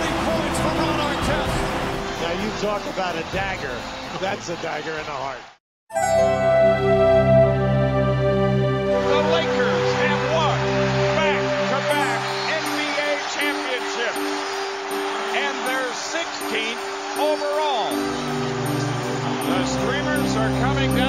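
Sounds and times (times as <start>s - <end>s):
crowd cheering and shouting: 0.0s - 6.4s, 8.9s - 21.0s.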